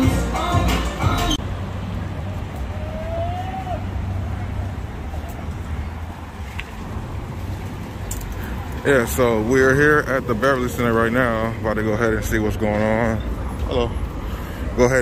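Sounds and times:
shop background music: 0:00.0 - 0:01.4
street traffic rumble: 0:00.0 - 0:15.0.

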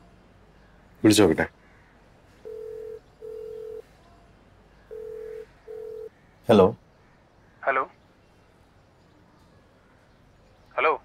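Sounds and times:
telephone ringback beeps: 0:02.4 - 0:03.8, 0:04.9 - 0:06.1.

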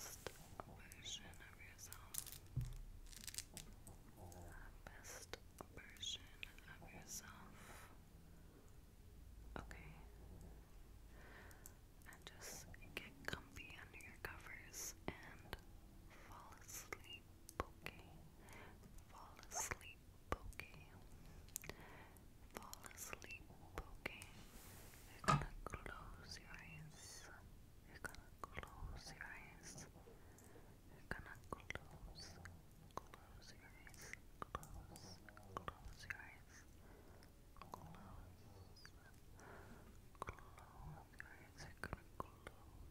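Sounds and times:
soft whispering: 0:00.0 - 0:08.7, 0:09.5 - 0:42.9.

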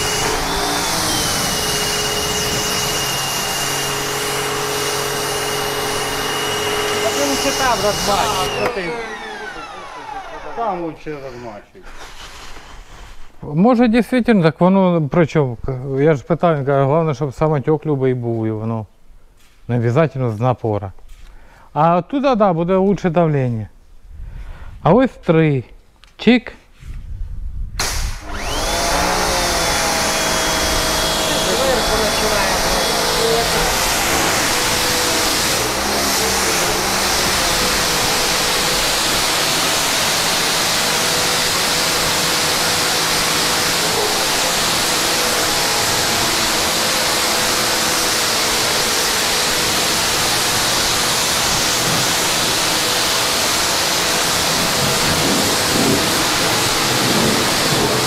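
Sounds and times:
pressure washer motor running: 0:00.0 - 0:11.6, 0:27.8 - 0:58.0
high-pressure water jet hissing: 0:00.0 - 0:13.2, 0:27.8 - 0:58.0.

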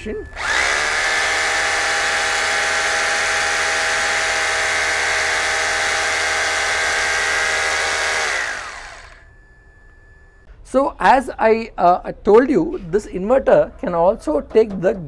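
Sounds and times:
electric drill whining: 0:00.2 - 0:09.3.

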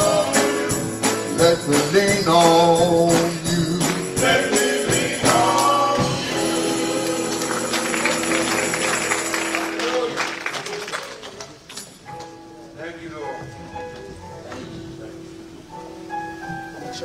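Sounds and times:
male vocal group singing gospel: 0:00.0 - 0:09.9
tambourine shaken in rhythm: 0:00.0 - 0:10.2.

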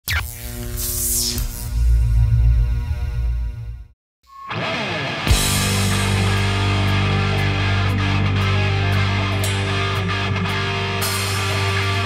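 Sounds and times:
deep bass hit: 0:05.3 - 0:10.0.

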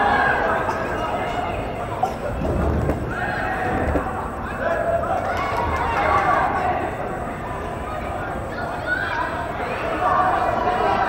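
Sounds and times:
indoor soccer game noise: 0:00.0 - 0:11.0.

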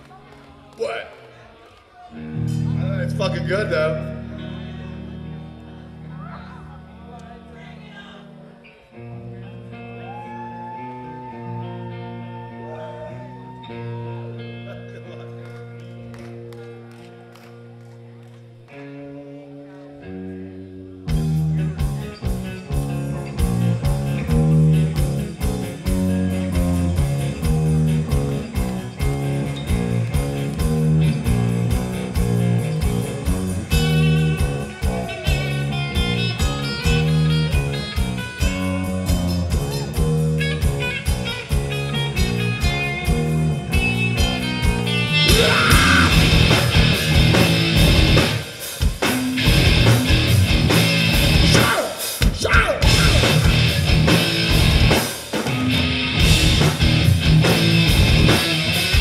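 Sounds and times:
guitar riff: 0:02.1 - 0:59.0
drums and bass beat: 0:21.1 - 0:59.0.

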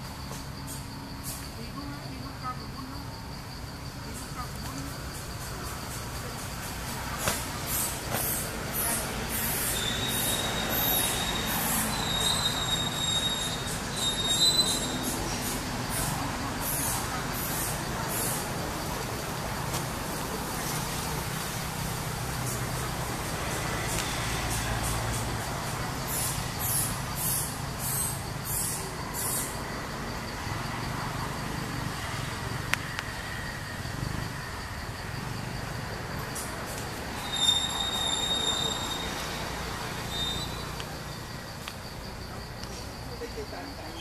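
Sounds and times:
low rumble of distant traffic: 0:00.0 - 0:44.0
high hissing bursts: 0:06.8 - 0:18.7.

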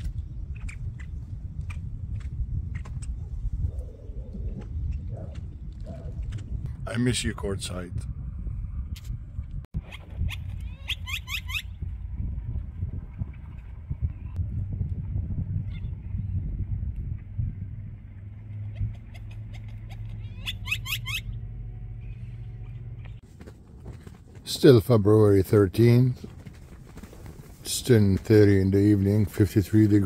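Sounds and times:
wind rumbling on microphone: 0:00.0 - 0:30.0
blackbirds whistling: 0:20.0 - 0:21.4.

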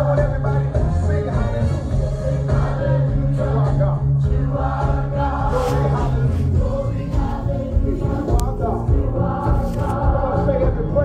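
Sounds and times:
group of voices singing: 0:00.0 - 0:11.0
steady bass accompaniment: 0:00.0 - 0:11.0.

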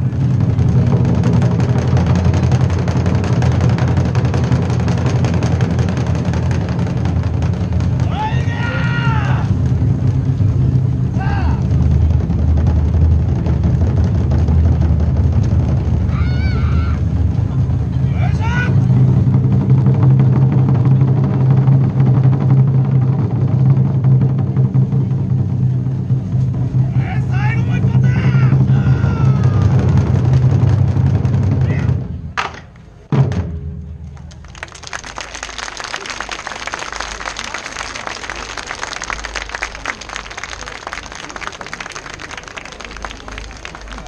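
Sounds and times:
taiko drums playing fast rhythm: 0:00.0 - 0:32.2, 0:33.1 - 0:34.0
rising shouted call: 0:08.0 - 0:09.6, 0:16.1 - 0:17.1, 0:27.0 - 0:29.8.

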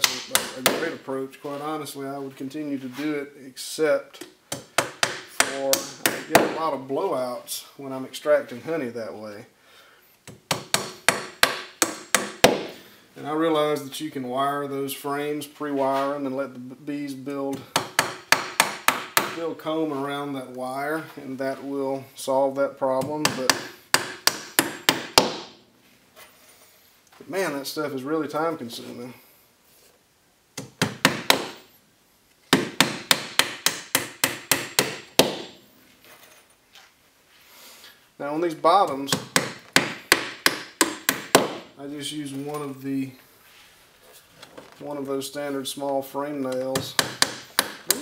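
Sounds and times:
hammer driving nails into wood: 0:04.5 - 0:06.6, 0:10.3 - 0:12.8, 0:17.5 - 0:19.4, 0:23.1 - 0:25.5, 0:30.6 - 0:31.6, 0:32.5 - 0:35.6, 0:39.1 - 0:41.7, 0:46.6 - 0:48.0.

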